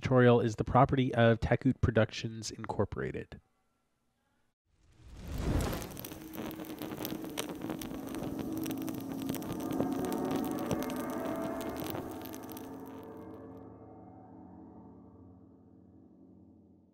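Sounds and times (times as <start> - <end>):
fire crackling: 4.8 - 13.3
low ringing tone: 5.8 - 15.0.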